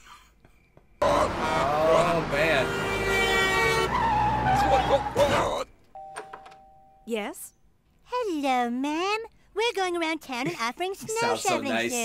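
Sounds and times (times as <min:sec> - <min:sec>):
tyres screeching: 0:01.0 - 0:05.7.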